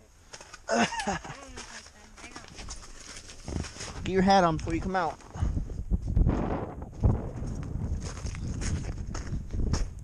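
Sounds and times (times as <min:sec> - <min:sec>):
footsteps crunching through snow: 0:01.3 - 0:10.0.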